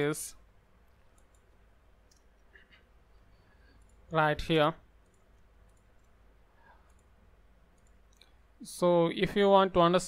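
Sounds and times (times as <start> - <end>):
faint low hum: 0.0 - 10.0
faint computer clicks: 1.0 - 2.9, 3.7 - 4.1, 5.0 - 6.2, 6.8 - 8.4.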